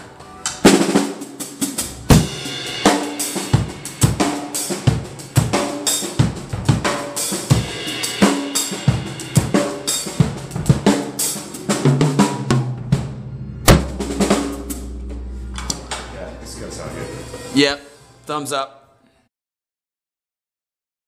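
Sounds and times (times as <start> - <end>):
acoustic drum kit: 0.0 - 18.3.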